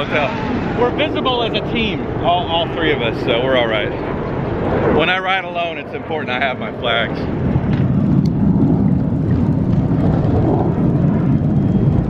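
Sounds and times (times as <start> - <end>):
fighter jet roaring overhead: 0.0 - 12.0.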